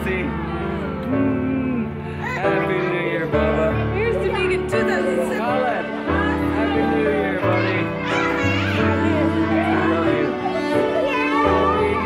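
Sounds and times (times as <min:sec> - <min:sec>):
children's excited chatter: 0:02.2 - 0:12.0.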